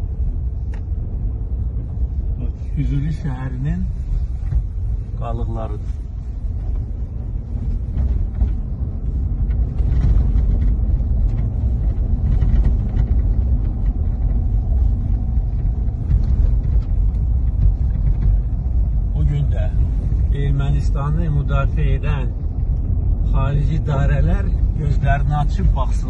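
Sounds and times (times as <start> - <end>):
car cabin road and engine rumble: 0.0 - 26.0.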